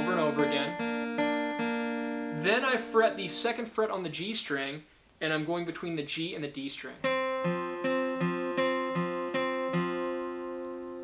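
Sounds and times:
acoustic guitar strings plucked: 0:00.0 - 0:03.7, 0:07.0 - 0:11.0.

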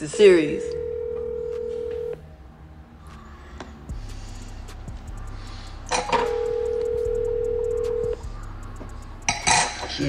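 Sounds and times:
telephone ringback tone: 0:00.4 - 0:02.2, 0:06.0 - 0:08.2.

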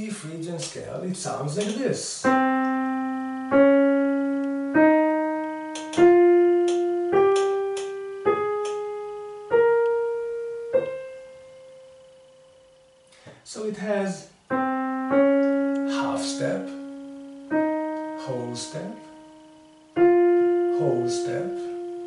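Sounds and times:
piano playing a scale: 0:01.6 - 0:13.1, 0:14.0 - 0:22.0.

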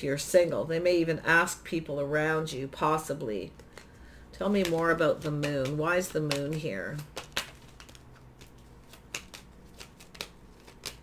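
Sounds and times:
cards being shuffled: 0:03.6 - 0:11.0.

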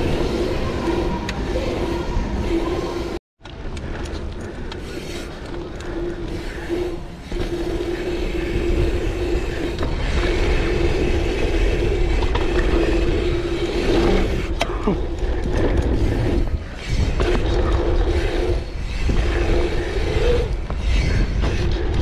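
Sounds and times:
bike freehub buzzing: 0:00.0 - 0:22.0
bike rattling: 0:00.0 - 0:22.0
bike tyres rolling on dirt: 0:00.0 - 0:22.0.

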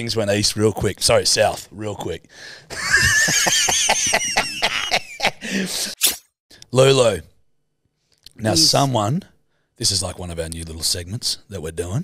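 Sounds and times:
man and woman laughing: 0:02.7 - 0:06.0.

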